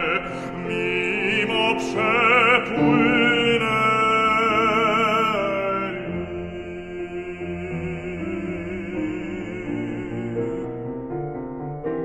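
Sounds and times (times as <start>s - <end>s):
baritone singing with vibrato: 0.0s - 11.4s
piano accompaniment: 0.0s - 12.0s.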